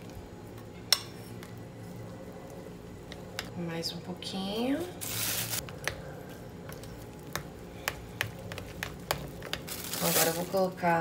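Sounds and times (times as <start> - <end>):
spoon stirring porridge: 5.6 - 10.2.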